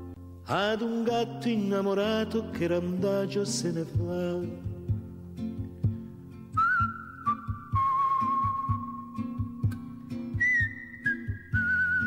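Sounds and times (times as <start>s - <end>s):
plucked guitar and bass: 0.0s - 12.0s
whistled melody: 6.5s - 12.0s.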